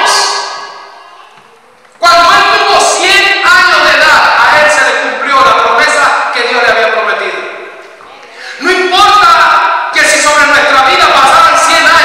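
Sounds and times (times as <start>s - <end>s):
man talking through microphone: 2.0s - 7.7s.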